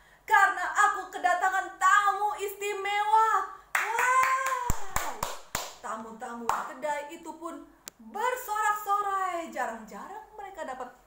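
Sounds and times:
speech: 0:00.3 - 0:05.0, 0:05.8 - 0:11.0
woman cheering: 0:03.8 - 0:05.2
woman clapping hands: 0:03.8 - 0:05.8.

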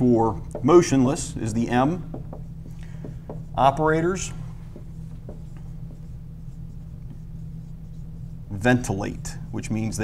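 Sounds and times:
steady low hum: 0:00.0 - 0:10.0
marker writing on whiteboard: 0:00.4 - 0:08.7.

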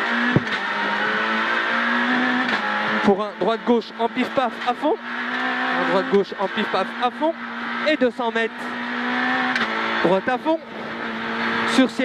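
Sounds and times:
car engine at high revs: 0:00.0 - 0:12.0
sharp knock: 0:00.3 - 0:00.6.

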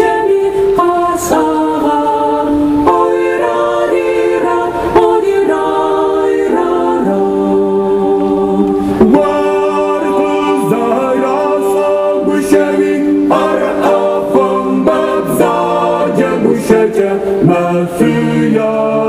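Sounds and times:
mixed choir singing in harmony: 0:00.0 - 0:19.0.

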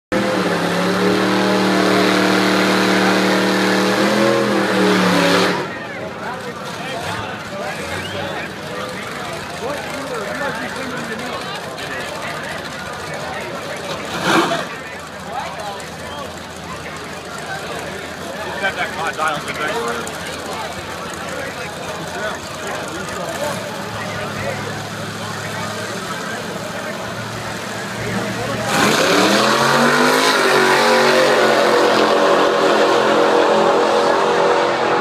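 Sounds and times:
crowd chatter: 0:00.1 - 0:35.0
racing engines at high revs: 0:00.1 - 0:35.0.

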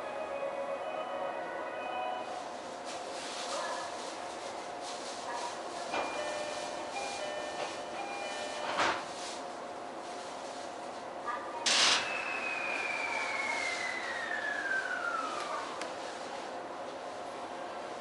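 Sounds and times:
electric train hiss: 0:11.7 - 0:15.6.

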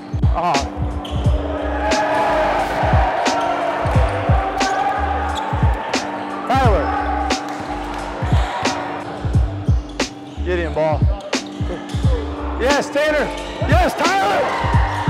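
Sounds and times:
crowd chatter: 0:00.0 - 0:15.0
music with pulsing bass beat: 0:00.1 - 0:10.2, 0:10.9 - 0:14.0, 0:14.6 - 0:15.0
basketballs bouncing on gym floor: 0:02.0 - 0:06.0, 0:07.4 - 0:08.6, 0:10.8 - 0:12.2.

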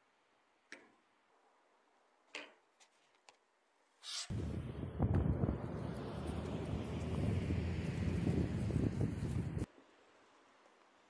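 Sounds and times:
wind buffeting microphone: 0:04.3 - 0:09.7.

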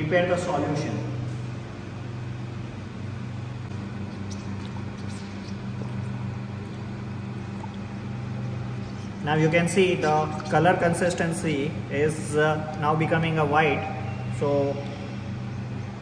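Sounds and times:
steady low room hum: 0:00.0 - 0:16.0.

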